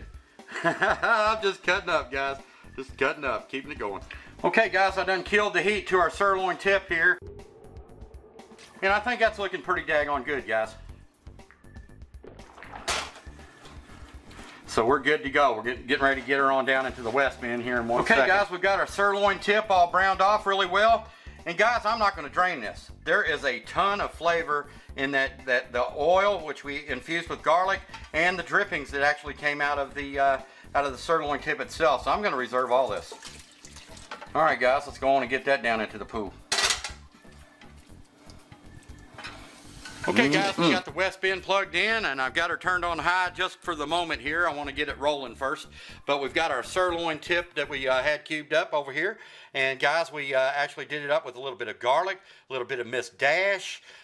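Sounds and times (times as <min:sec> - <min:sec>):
background music with bass line: 0:00.0 - 0:33.1, 0:33.7 - 0:48.1
spatula stirring meat in gravy: 0:37.1 - 0:40.7.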